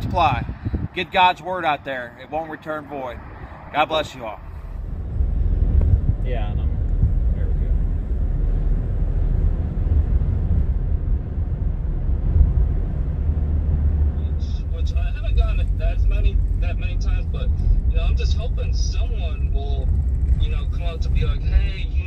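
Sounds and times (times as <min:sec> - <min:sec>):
car driving rumble: 0:00.0 - 0:22.0.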